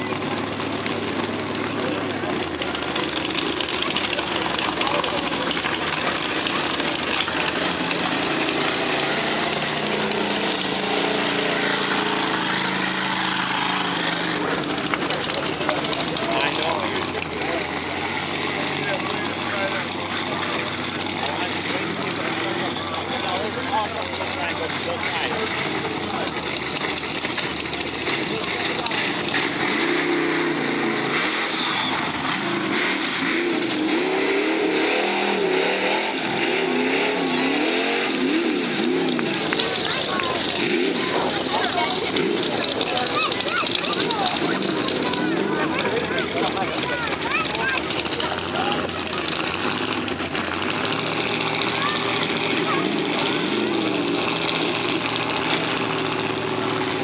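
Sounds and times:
crowd voices: 0.0 - 57.0
truck engines revving: 0.0 - 57.0.

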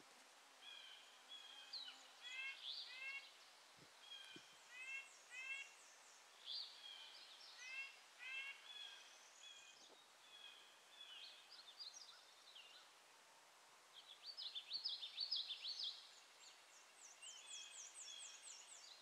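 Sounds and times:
woodland birdsong: 0.5 - 13.1, 13.8 - 19.0.

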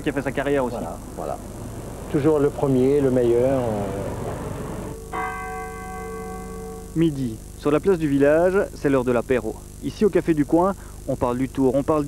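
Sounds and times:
church bell ringing: 4.1 - 7.0.

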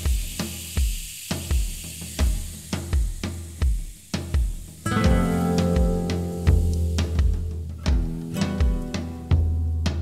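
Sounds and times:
drum kit beat: 0.0 - 10.0
guitar chords: 4.8 - 10.0.

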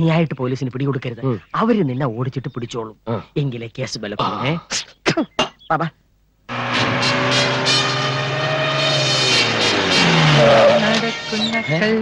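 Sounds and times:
jeep engine running hard: 6.5 - 11.6.

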